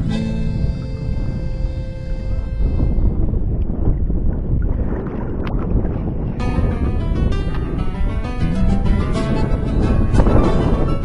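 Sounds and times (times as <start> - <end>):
wind rumbling on microphone: 0.0 - 11.0
background music: 6.4 - 11.0.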